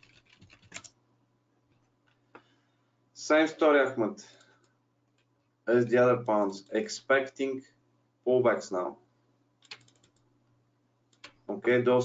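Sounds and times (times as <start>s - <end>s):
faint typing on computer keyboard: 0.0s - 1.0s, 4.2s - 5.5s, 9.6s - 10.3s, 11.1s - 11.5s.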